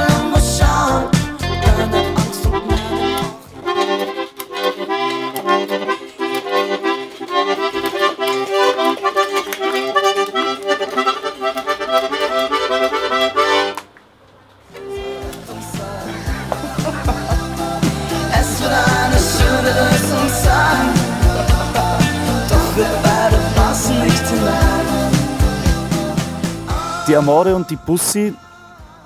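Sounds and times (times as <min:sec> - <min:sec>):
toy accordion chords: 0:00.0 - 0:13.9, 0:14.8 - 0:28.4.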